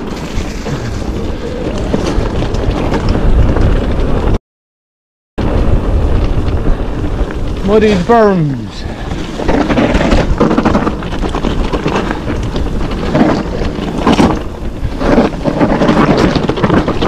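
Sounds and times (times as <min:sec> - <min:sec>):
bike rattling and knocking: 0:00.0 - 0:04.4, 0:05.4 - 0:17.0
tyres rumbling on dirt: 0:00.0 - 0:04.4, 0:05.4 - 0:17.0
wind buffeting microphone: 0:00.0 - 0:04.4, 0:05.4 - 0:17.0.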